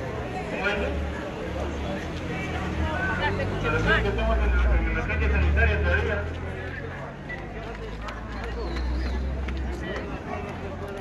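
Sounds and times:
people talking: 0.0s - 11.0s
vehicle rumble: 0.0s - 11.0s.

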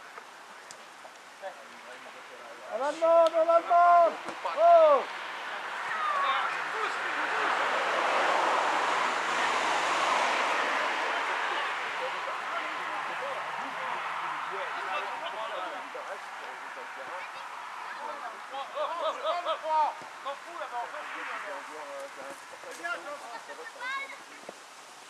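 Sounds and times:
distant shouts from players: 2.7s - 8.5s
man shouting: 2.8s - 5.0s.

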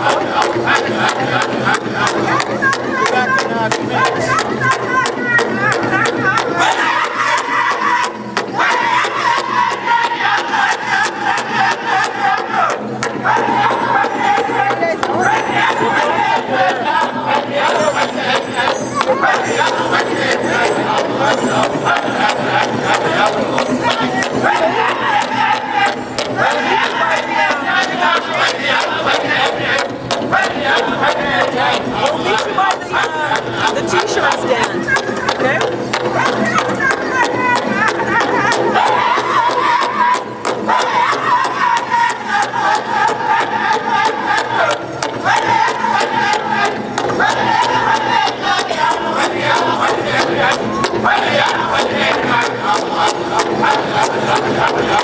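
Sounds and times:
fast steady drum beat: 0.0s - 55.0s
group singing in high voices: 0.0s - 55.0s.

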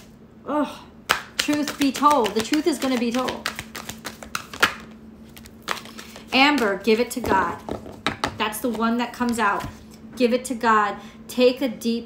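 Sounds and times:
cards shuffled by hand: 1.4s - 7.0s.

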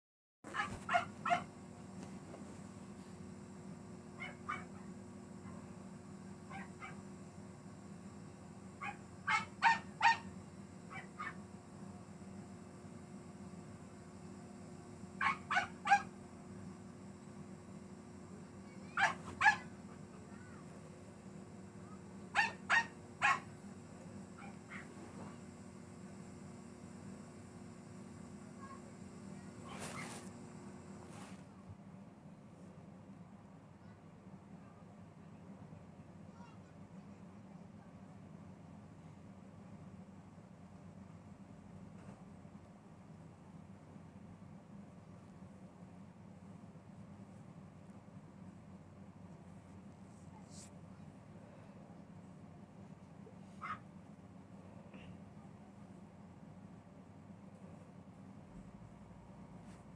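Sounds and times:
dog barking: 0.5s - 1.5s, 4.2s - 4.9s, 6.5s - 7.0s, 8.8s - 10.3s, 10.9s - 11.4s, 15.2s - 16.1s, 18.9s - 19.7s, 22.3s - 23.5s, 24.4s - 24.9s, 53.6s - 53.8s
faint steady hum: 0.5s - 59.9s.

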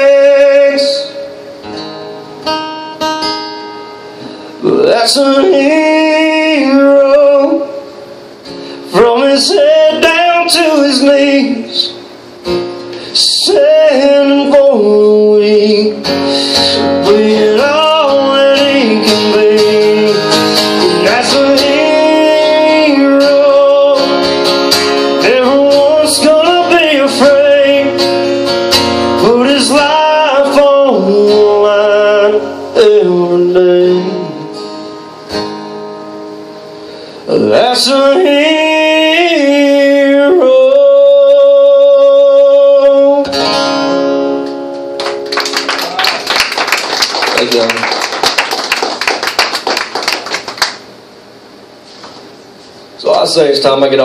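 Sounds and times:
man singing country song: 0.0s - 1.4s, 4.6s - 7.8s, 8.9s - 12.0s, 13.1s - 24.4s, 25.1s - 28.3s, 29.0s - 34.6s, 37.3s - 43.4s
strummed acoustic guitar: 0.0s - 45.7s.

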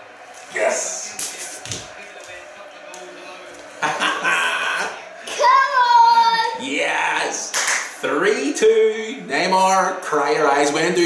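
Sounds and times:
high-pitched held shout: 5.4s - 6.6s.

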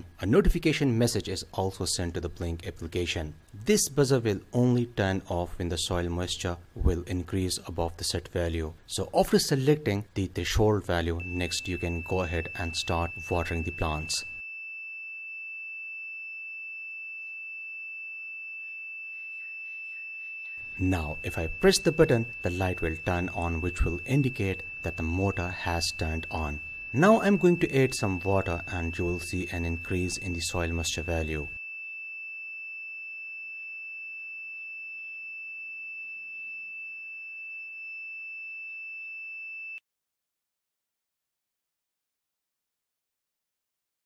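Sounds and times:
high-pitched electronic buzzer tone: 11.2s - 39.8s.

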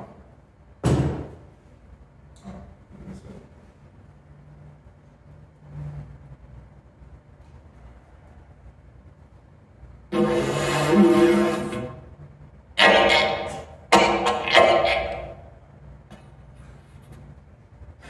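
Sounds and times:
didgeridoo droning: 10.1s - 15.6s.

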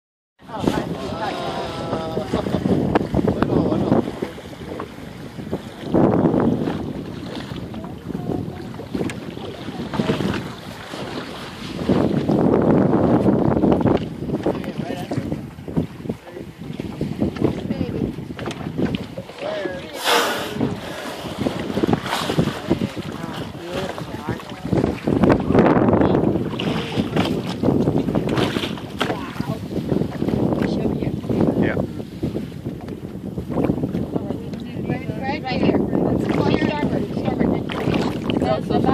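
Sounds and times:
gusty wind on microphone: 0.4s - 38.9s.

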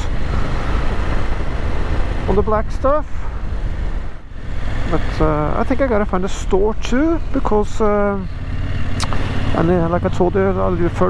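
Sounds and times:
motorcycle engine rumble: 0.0s - 11.0s
wind rushing over microphone: 0.0s - 11.0s.

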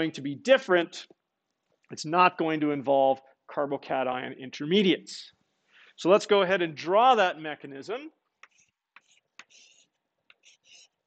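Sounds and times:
chalk scratching on blackboard: 8.4s - 11.0s
chalk tapping on blackboard: 8.4s - 11.0s.

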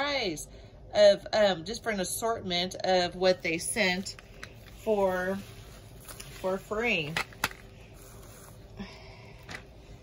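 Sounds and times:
bubble wrap crinkling: 3.8s - 8.8s.

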